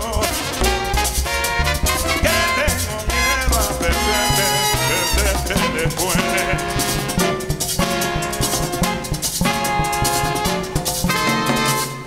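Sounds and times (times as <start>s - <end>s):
congas: 0.0s - 12.0s
live salsa band playing: 0.0s - 12.0s
piano: 0.0s - 12.0s
rhythmic bass line: 0.0s - 12.0s.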